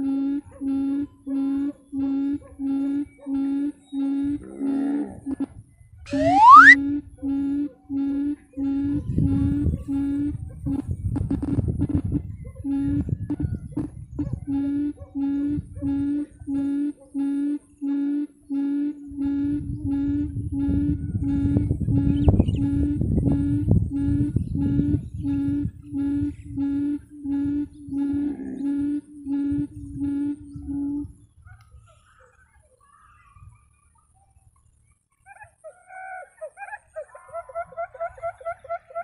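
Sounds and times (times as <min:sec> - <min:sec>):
quail calling: 0:06.1 - 0:06.8.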